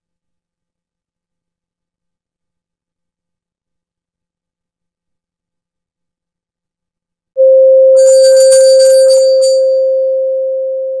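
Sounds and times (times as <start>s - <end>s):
chime-like shimmer: 8.0s - 9.9s.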